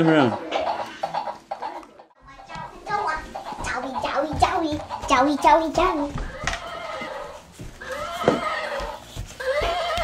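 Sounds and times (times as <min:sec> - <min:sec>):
toy horse neighing: 0:06.4 - 0:10.0.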